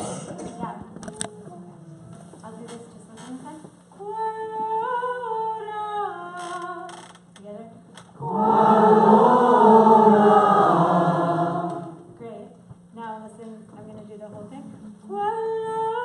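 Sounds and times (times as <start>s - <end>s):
group singing together: 8.2s - 12.1s.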